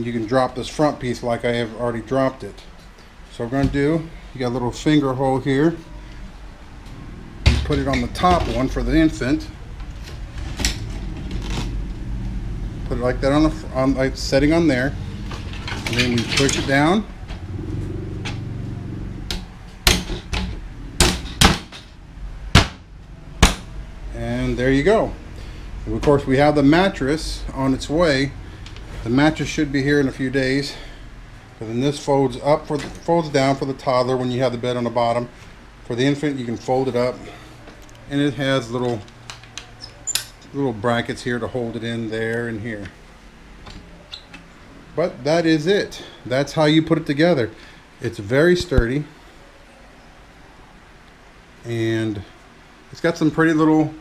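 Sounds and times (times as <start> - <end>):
low hum: 2.6 - 45.0.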